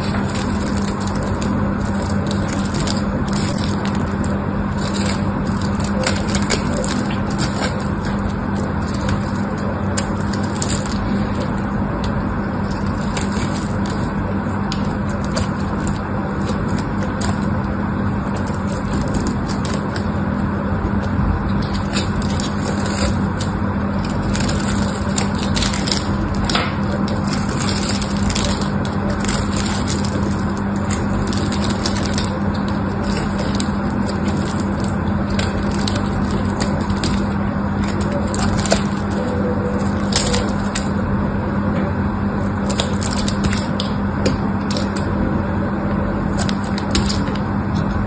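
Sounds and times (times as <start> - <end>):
knife scraping soap: 0.0 - 41.0.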